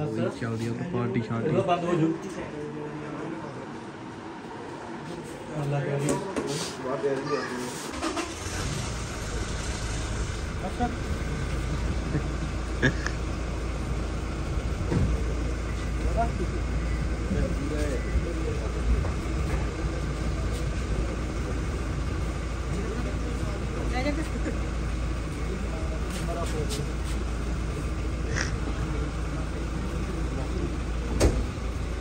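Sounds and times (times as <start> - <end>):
indistinct conversation: 0.0 - 32.0.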